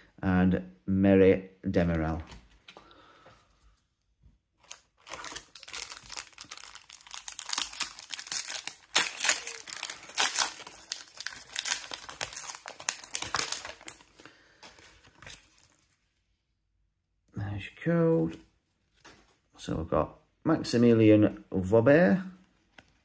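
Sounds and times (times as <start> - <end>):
plastic wrapper tearing open: 4.6 - 14.3
cards rustling: 4.6 - 16.0.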